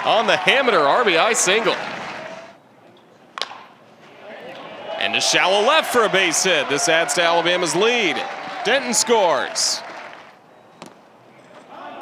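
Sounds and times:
faint ballpark ambience: 0:00.0 - 0:12.0.

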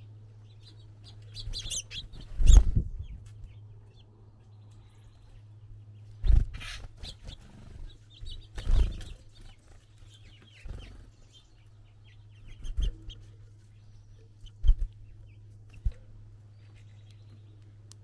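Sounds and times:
steady low hum: 0:00.0 - 0:18.0.

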